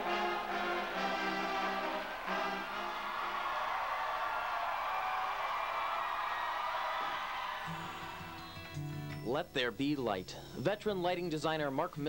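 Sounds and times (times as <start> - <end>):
brass band chord: 0.0 - 3.4
soft music with low notes: 7.7 - 12.0.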